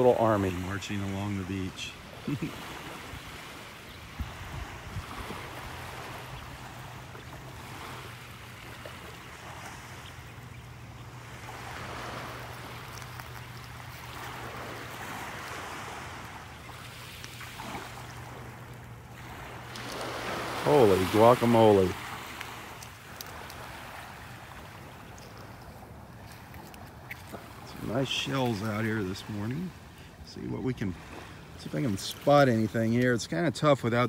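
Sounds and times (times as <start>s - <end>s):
small waves lapping on beach: 0.0s - 34.0s
wind on microphone: 4.1s - 6.8s.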